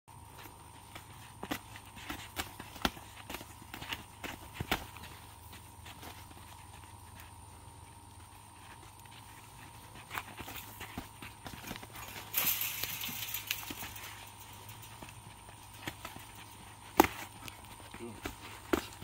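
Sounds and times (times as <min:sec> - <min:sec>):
feet scuffing on dirt floor: 0:00.1 - 0:19.0
gloved punches thudding: 0:15.8 - 0:19.0.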